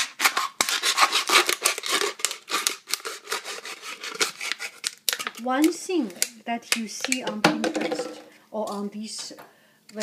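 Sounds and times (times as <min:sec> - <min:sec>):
knife cutting plastic bottle: 0:00.0 - 0:05.4.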